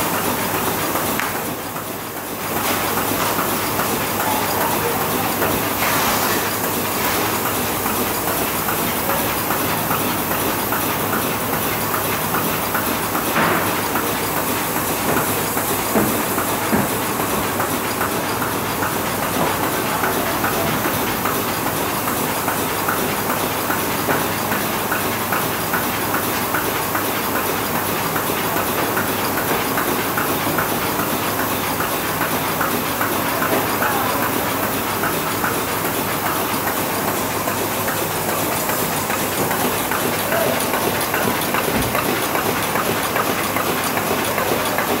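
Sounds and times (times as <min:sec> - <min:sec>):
machine belts and rollers clattering: 0:00.0 - 0:45.0.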